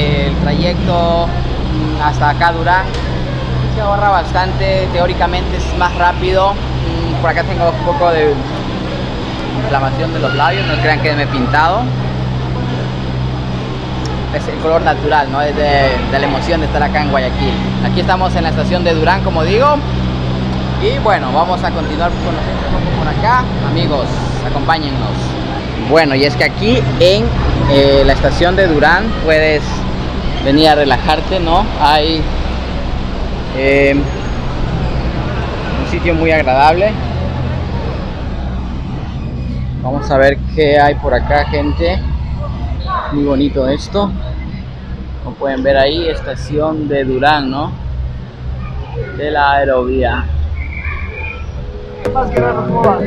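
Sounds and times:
man speaking: 0:00.0 - 0:03.0, 0:03.6 - 0:08.5, 0:09.6 - 0:11.9, 0:14.2 - 0:19.9, 0:20.8 - 0:29.8, 0:30.4 - 0:32.3, 0:33.6 - 0:34.1, 0:39.9 - 0:42.0, 0:52.1 - 0:53.0
cable car machinery hum: 0:00.0 - 0:52.9
urban outdoor background rumble: 0:00.0 - 0:53.0.

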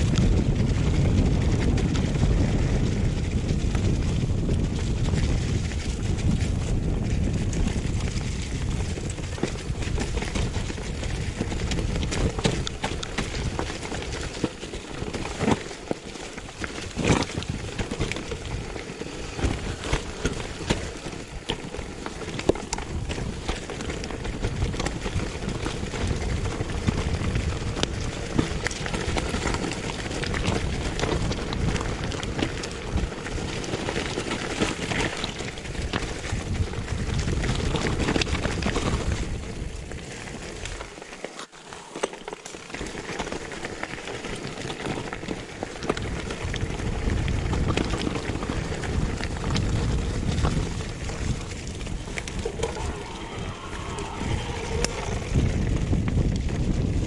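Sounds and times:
wind noise rumble: 0:00.0 - 0:41.0, 0:41.8 - 0:57.0
bike rattling and knocking: 0:00.0 - 0:57.0
bike tyres crunching over stones: 0:00.0 - 0:57.0.

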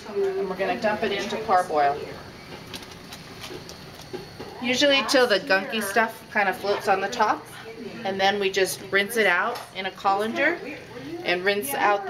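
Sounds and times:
water boiling in a pot: 0:00.0 - 0:12.0.

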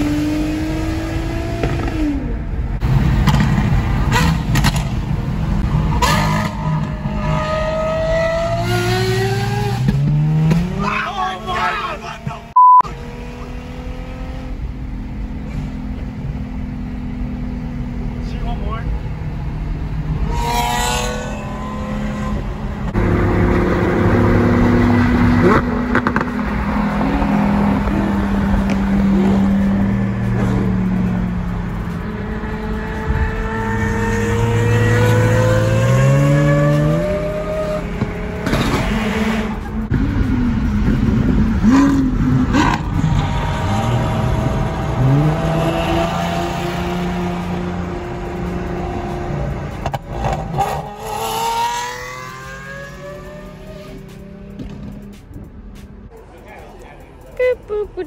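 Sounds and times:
sports car engines accelerating: 0:00.0 - 0:58.0.

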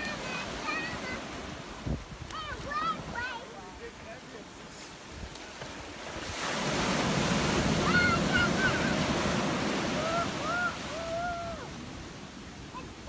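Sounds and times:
waves breaking and washing: 0:00.0 - 0:13.0
wind on microphone: 0:01.7 - 0:02.7
high rising and falling cries: 0:09.8 - 0:11.8.

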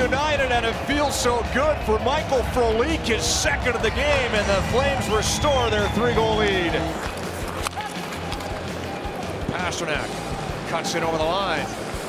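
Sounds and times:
music: 0:00.0 - 0:12.0
crowd murmur: 0:00.7 - 0:10.8
sticks and puck clicking on ice: 0:06.9 - 0:09.3.

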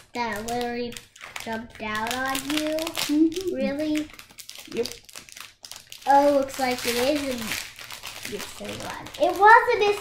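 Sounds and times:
plastic wrapper crinkling: 0:00.0 - 0:10.0.

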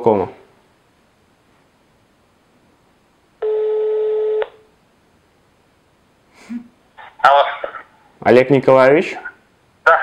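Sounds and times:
telephone ringback beep: 0:03.4 - 0:04.6.

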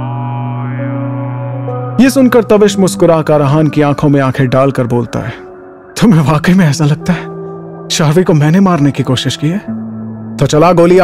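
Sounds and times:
low drone: 0:00.0 - 0:03.0.

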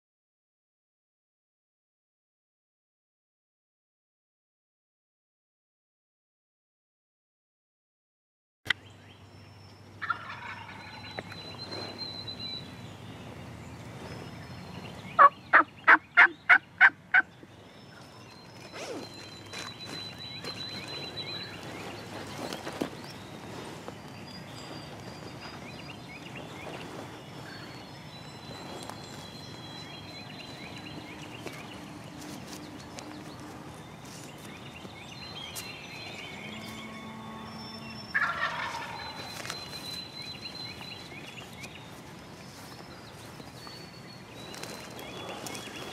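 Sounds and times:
small birds chirping: 0:08.7 - 0:45.9
turkey gobbling: 0:10.0 - 0:11.2, 0:15.2 - 0:17.3, 0:38.1 - 0:39.5.

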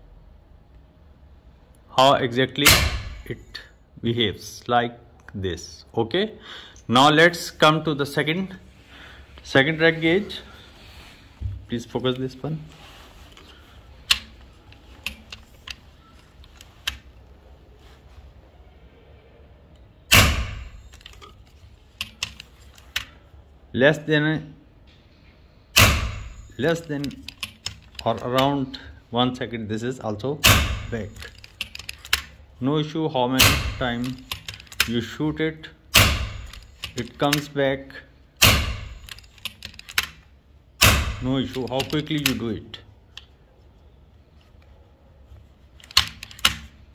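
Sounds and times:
air rifle shot: 0:02.6 - 0:03.3, 0:20.1 - 0:20.8, 0:25.8 - 0:26.4, 0:36.0 - 0:36.5, 0:38.4 - 0:39.0
rifle handling clicks: 0:36.3 - 0:37.5, 0:38.4 - 0:40.2, 0:45.8 - 0:46.7.

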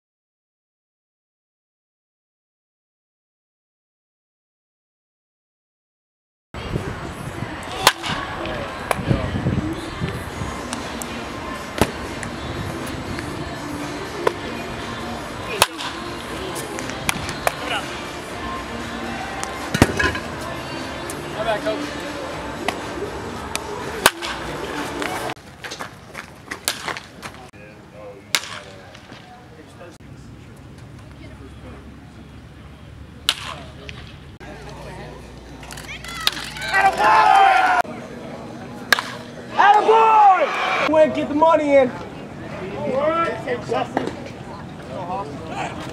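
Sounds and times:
bat cracking baseballs: 0:07.6 - 0:09.0, 0:10.6 - 0:14.6, 0:15.4 - 0:18.0, 0:19.3 - 0:20.4, 0:22.6 - 0:27.5, 0:28.3 - 0:29.3, 0:33.2 - 0:34.8, 0:35.4 - 0:37.1, 0:38.8 - 0:39.4.

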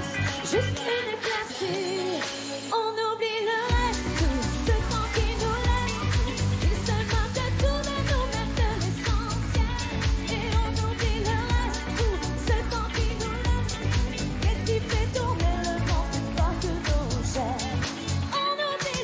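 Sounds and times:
woman singing: 0:00.0 - 0:19.0
thumping bass and drum beat: 0:03.7 - 0:18.3.

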